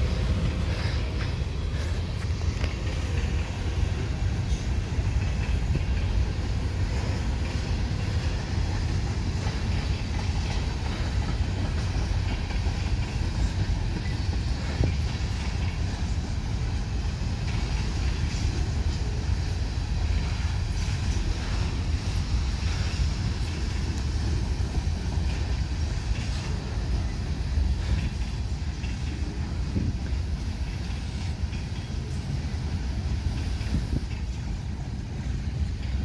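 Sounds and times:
train cars knocking: 0.0 - 36.0
train wheels rumbling on rail: 0.0 - 36.0.

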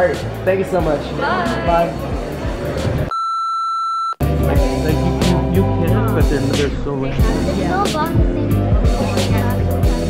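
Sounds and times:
electronic beep: 3.1 - 4.2
background music with a beat: 4.2 - 10.0.

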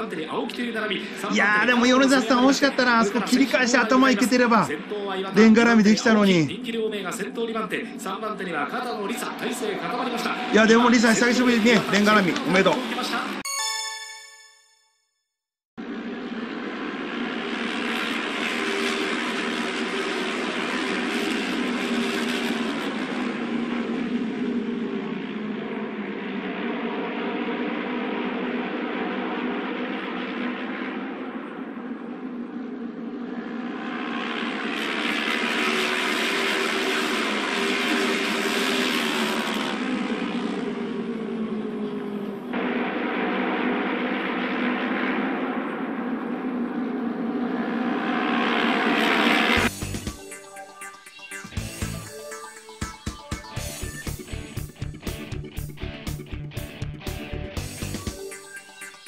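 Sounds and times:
racing motorcycles passing: 0.0 - 13.4, 15.8 - 52.0.

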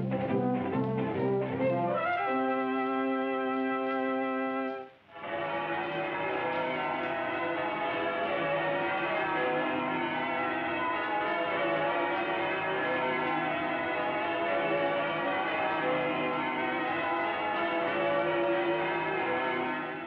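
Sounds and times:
church bells pealing: 0.0 - 20.0.

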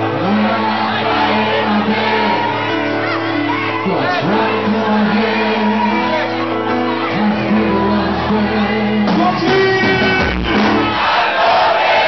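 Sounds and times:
crowd shouting and singing: 0.0 - 12.0
loud party band music: 0.0 - 12.0.

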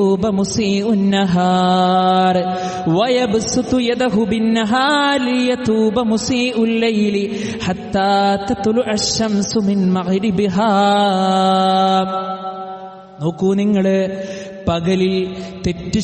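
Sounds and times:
man chanting melodically: 0.0 - 16.0.

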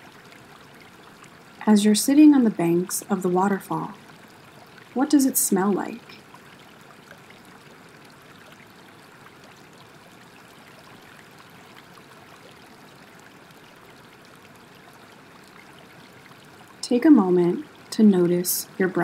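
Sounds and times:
flowing water rushing: 0.0 - 19.0.

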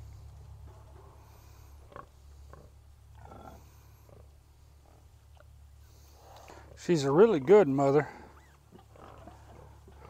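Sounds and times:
faint low rumble: 0.0 - 10.0
pig grunting softly: 1.0 - 6.8, 7.5 - 10.0.

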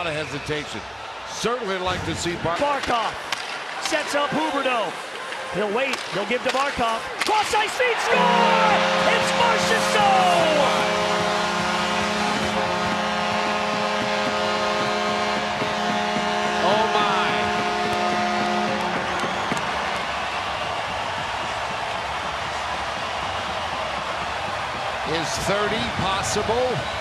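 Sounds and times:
crowd cheering: 0.0 - 27.0
arena goal horn: 8.0 - 21.0.

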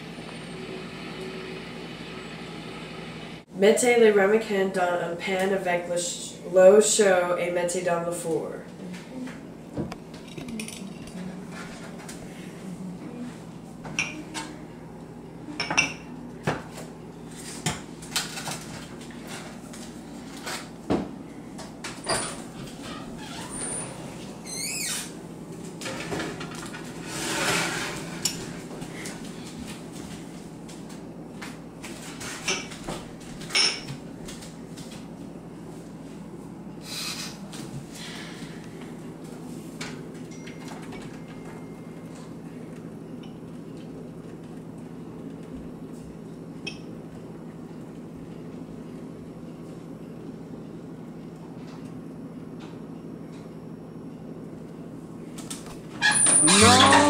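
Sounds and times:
steady low hum: 0.0 - 56.0.

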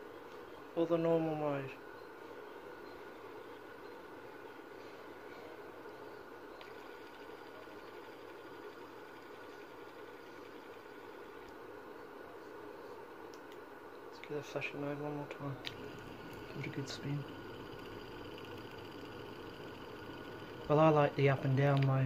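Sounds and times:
fidget spinner whirring: 0.0 - 13.6, 14.3 - 22.0.

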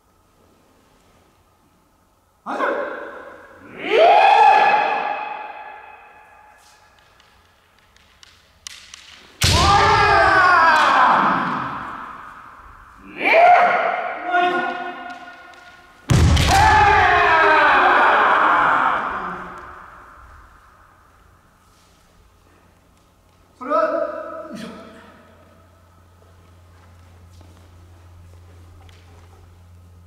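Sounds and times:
long drawn-out shouts: 3.6 - 6.5, 9.5 - 15.7, 16.4 - 20.8.

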